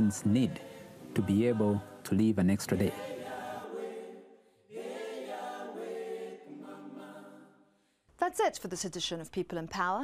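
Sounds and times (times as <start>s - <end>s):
choir singing held notes: 0.0s - 7.7s.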